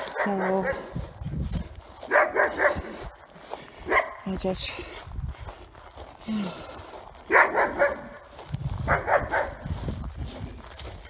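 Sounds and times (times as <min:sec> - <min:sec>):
dog barking: 0:00.0 - 0:01.0, 0:02.1 - 0:02.9, 0:03.8 - 0:04.3, 0:07.3 - 0:08.2, 0:08.8 - 0:09.6.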